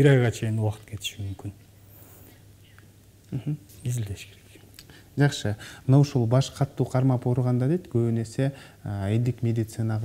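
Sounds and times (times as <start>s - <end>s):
person speaking: 3.3s - 10.0s.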